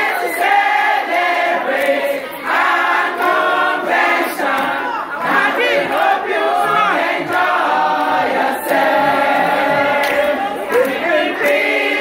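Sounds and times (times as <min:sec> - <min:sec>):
women singing and chanting: 0:00.0 - 0:12.0.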